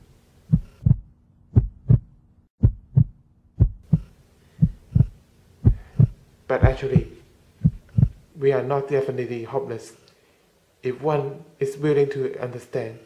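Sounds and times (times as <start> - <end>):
heartbeat thumps: 0.5 - 8.3
faint steady hum: 3.6 - 13.0.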